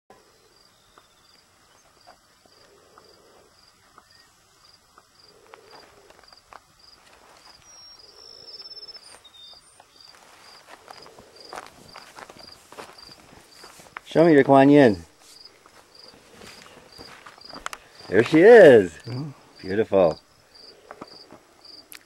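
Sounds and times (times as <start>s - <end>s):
cricket chirping: 0.1s - 22.0s
footsteps on dry ground: 9.0s - 18.9s.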